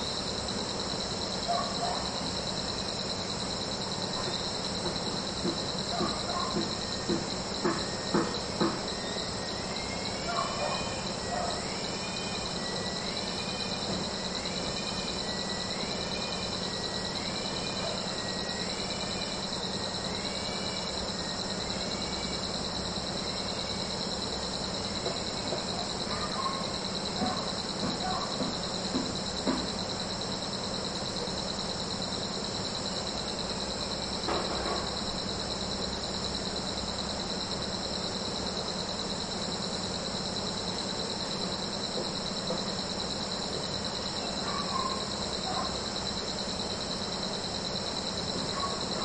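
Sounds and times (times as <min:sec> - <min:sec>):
high-pitched insect chorus: 0:00.0 - 0:49.0.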